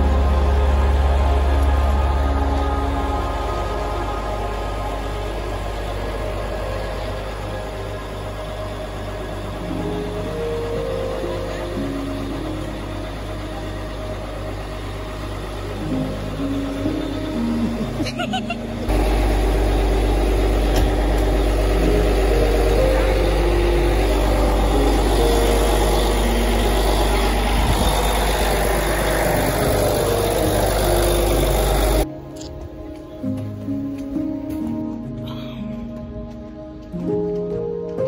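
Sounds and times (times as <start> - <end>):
bus engine idling: 0.0 - 38.0
slow sombre background music: 0.0 - 38.0.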